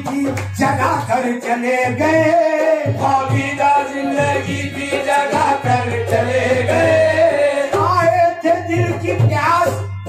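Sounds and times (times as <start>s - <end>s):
man singing: 0.0s - 9.9s
instrumental accompaniment: 0.0s - 10.0s.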